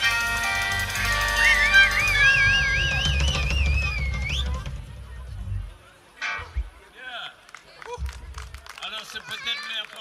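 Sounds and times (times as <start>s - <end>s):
blues harmonica high note: 0.0s - 4.2s
low drum rumble: 0.8s - 5.8s.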